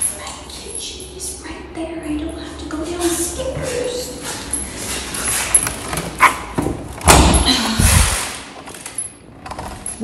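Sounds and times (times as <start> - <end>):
door thud and clatter: 5.8 - 10.0.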